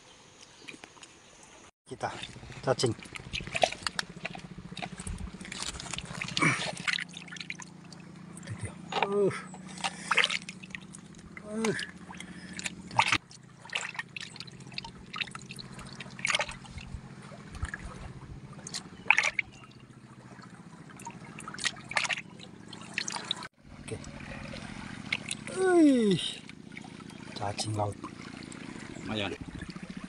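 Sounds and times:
water splashing and dripping: 0:02.0 - 0:30.0.

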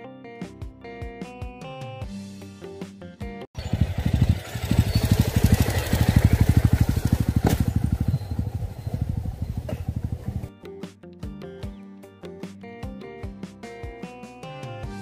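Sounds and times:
motorcycle engine at low revs: 0:03.6 - 0:10.5
guitar music: 0:10.4 - 0:15.0.

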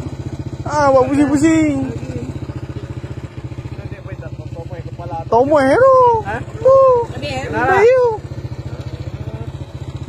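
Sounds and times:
small motorcycle engine idling: 0:00.0 - 0:10.0.

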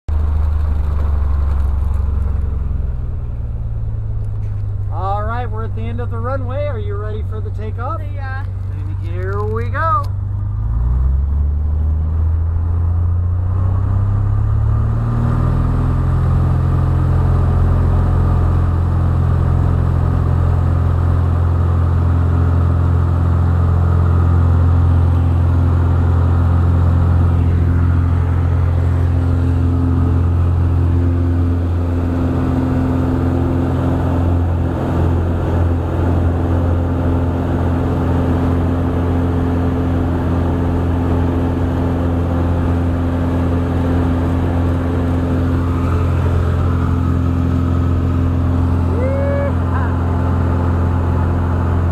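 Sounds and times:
propeller plane engine drone: 0:00.1 - 0:51.9.

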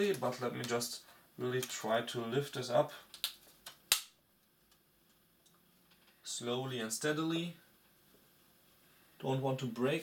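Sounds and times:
laptop cover snapping: 0:03.2 - 0:04.1.

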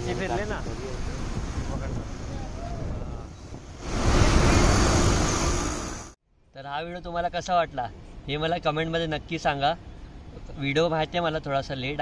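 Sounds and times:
engine noise: 0:00.0 - 0:06.2
tyres hissing on wet road: 0:03.7 - 0:06.2.

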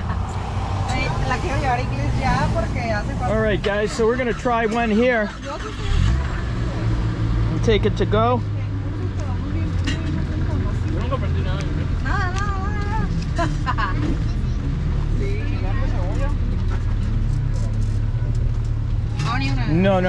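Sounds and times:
steady low rumble: 0:00.0 - 0:15.4.

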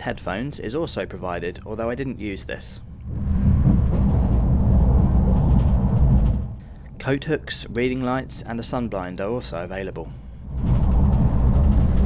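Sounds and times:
train running rumble from inside: 0:03.2 - 0:06.6, 0:08.0 - 0:12.0.

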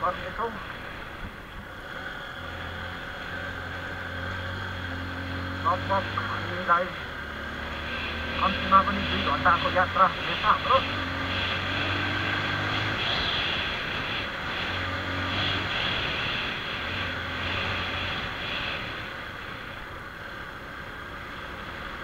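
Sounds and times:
motorcycle engine running: 0:00.6 - 0:22.0.

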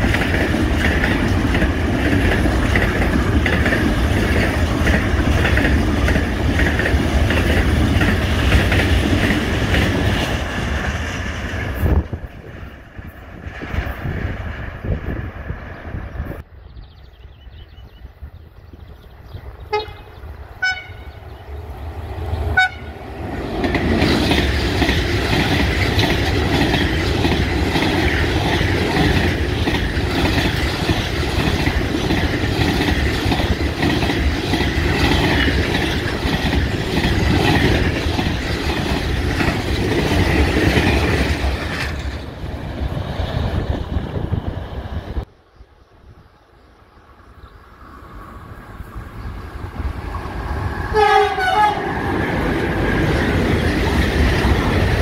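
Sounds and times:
train wheels on rails: 0:00.0 - 0:16.5, 0:18.0 - 0:45.4, 0:46.0 - 0:55.0
locomotive horn toots: 0:19.7 - 0:21.2, 0:22.6 - 0:23.0, 0:50.9 - 0:51.9.

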